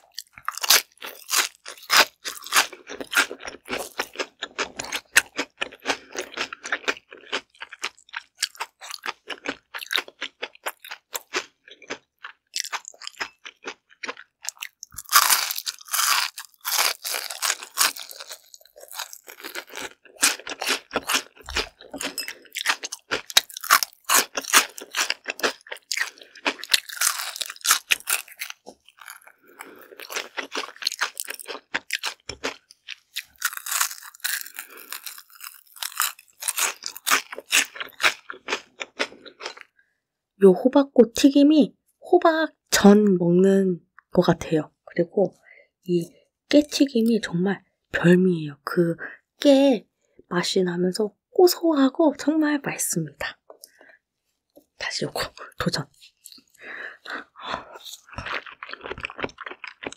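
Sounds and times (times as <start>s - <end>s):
crunching and chewing fried food: 0.0s - 39.9s, 53.5s - 59.9s.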